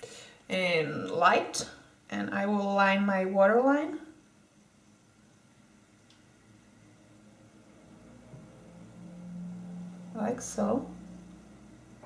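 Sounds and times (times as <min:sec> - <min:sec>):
low closed-mouth humming: 0:06.6 - 0:12.0.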